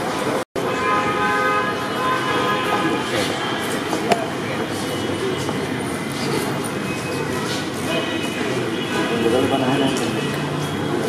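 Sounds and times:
street traffic noise: 0.0 - 11.0
car horn: 0.6 - 4.3, 7.9 - 10.9.

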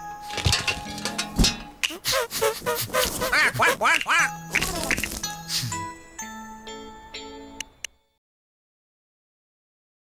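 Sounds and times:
background music: 0.0 - 8.2
squeaky quack-like giggles: 1.9 - 5.3.

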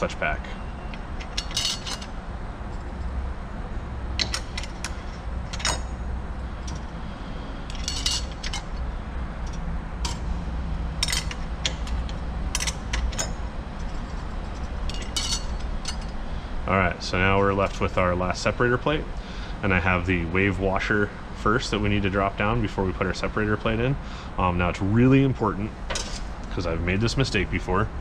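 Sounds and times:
metal clutch plates clinking: 0.0 - 3.2, 4.1 - 7.0, 7.6 - 16.3, 25.8 - 26.6
steady low hum: 0.0 - 28.0.

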